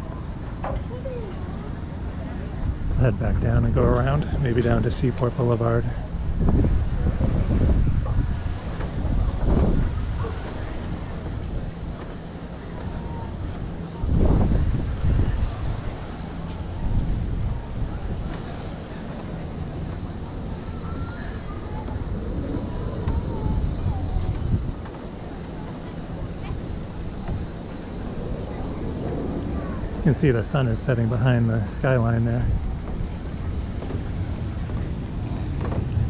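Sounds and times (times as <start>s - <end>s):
low steady engine hum: 0.0s - 36.0s
wind buffeting microphone: 0.0s - 36.0s.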